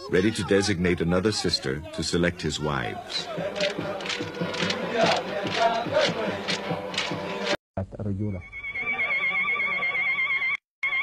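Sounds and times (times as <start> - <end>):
crowd chanting: 0.1 - 7.6.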